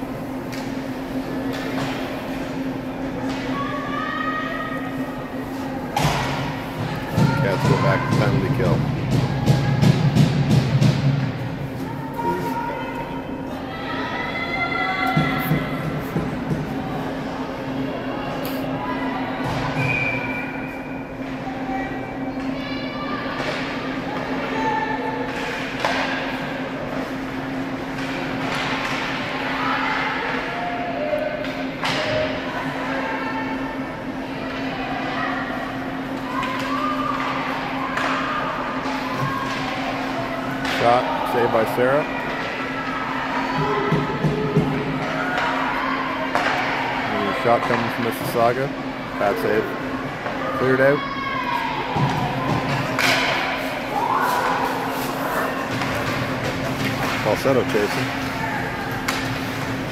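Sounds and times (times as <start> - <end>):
distant shouts: 3.2 - 10.2, 11.8 - 26.1, 29.2 - 48.0, 48.8 - 59.9
hockey sticks and puck knocking: 46.3 - 46.7, 52.0 - 59.9.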